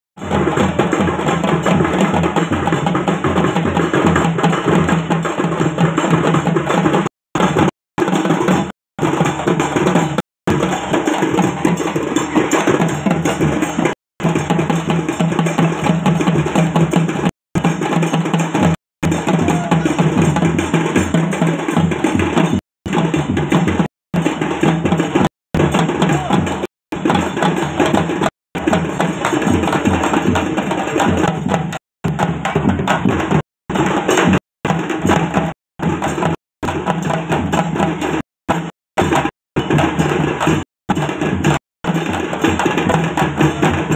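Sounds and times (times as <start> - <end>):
barrel drums playing folk rhythm: 0.2 - 43.9.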